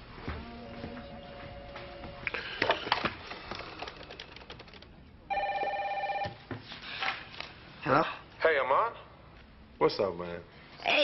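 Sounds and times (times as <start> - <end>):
telephone ringing: 5.3 - 6.4.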